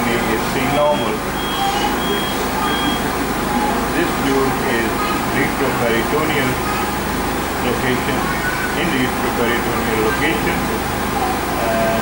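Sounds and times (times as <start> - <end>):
low background hum: 0.0 - 12.0
high-pitched electronic beeps: 0.9 - 3.1.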